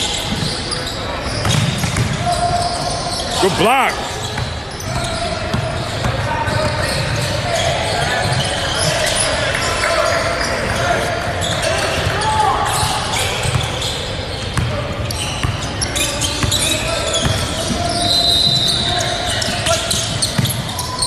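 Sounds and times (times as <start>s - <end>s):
voices echoing in hall: 0.0s - 21.0s.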